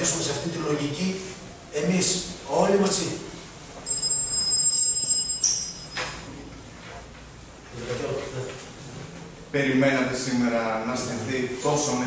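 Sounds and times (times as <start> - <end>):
high-pitched electronic tone: 3.8 - 6.2.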